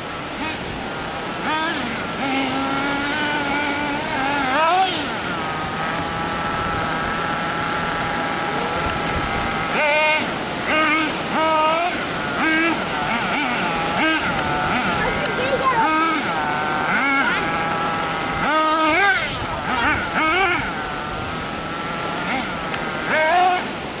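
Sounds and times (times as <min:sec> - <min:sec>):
rc buggy engine revving: 0:00.0 - 0:24.0.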